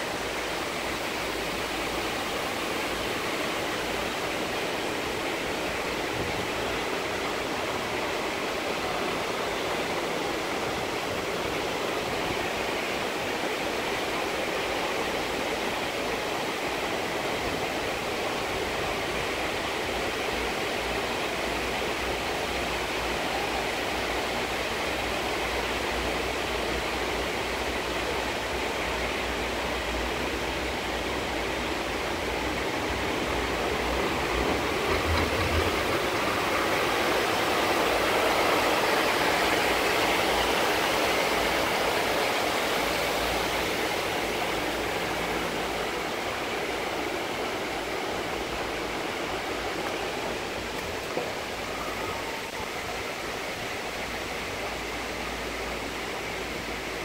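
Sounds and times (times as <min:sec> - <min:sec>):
running cable lift haul rope: 0:00.0 - 0:57.0.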